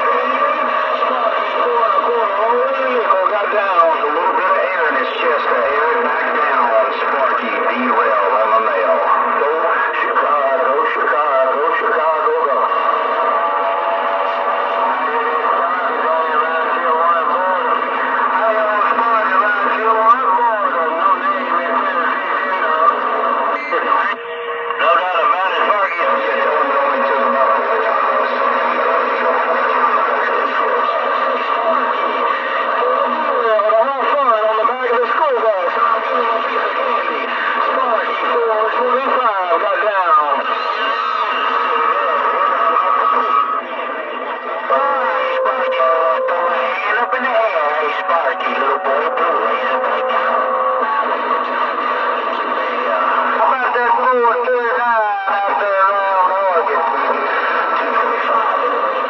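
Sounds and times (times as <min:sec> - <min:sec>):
garbled radio voices: 0:00.0 - 0:59.0
low steady radio tone: 0:00.0 - 0:59.0
radio static: 0:00.0 - 0:59.0.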